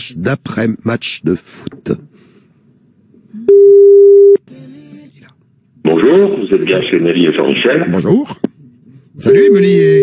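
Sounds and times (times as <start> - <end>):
telephone ringback beep: 3.5 - 4.4.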